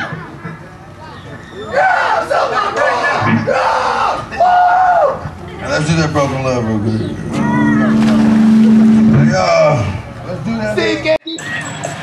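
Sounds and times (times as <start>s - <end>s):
men yelling and whooping: 1.7s - 5.4s.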